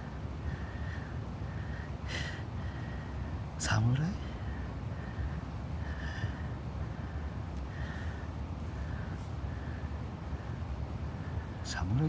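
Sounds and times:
low outdoor rumble: 0:00.0 - 0:12.0
man speaking: 0:03.6 - 0:04.3, 0:11.7 - 0:12.0.

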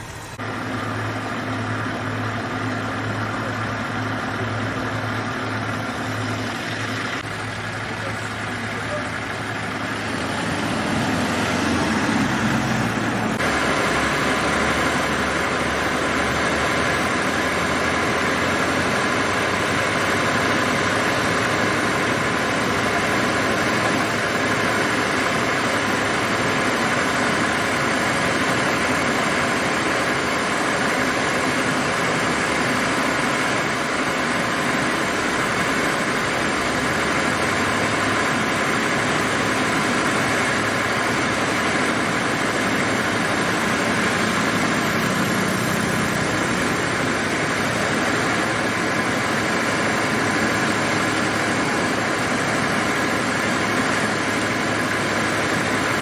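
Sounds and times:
crane truck engine running: 0:00.0 - 0:56.0.

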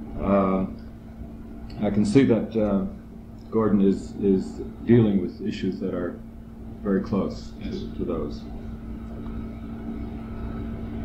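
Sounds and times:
constant hum: 0:00.0 - 0:11.0.

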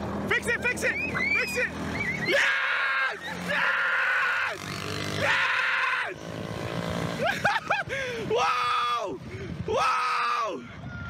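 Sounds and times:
faint small vehicle engine: 0:00.0 - 0:11.0
high-pitched yelling and cheering: 0:00.8 - 0:06.2.

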